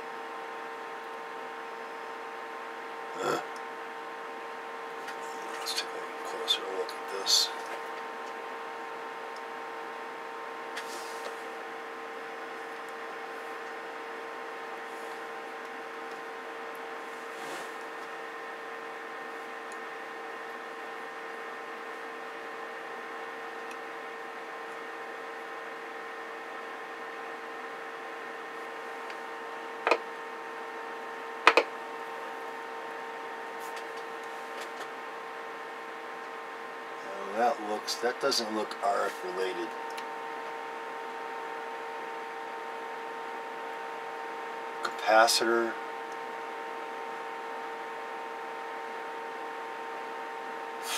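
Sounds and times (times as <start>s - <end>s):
steady electronic hum: 0.0s - 50.9s.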